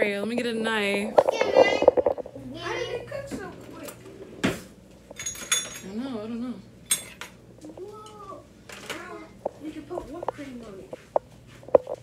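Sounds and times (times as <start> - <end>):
dishes and cutlery clattering: 5.1 - 6.0, 6.9 - 7.4.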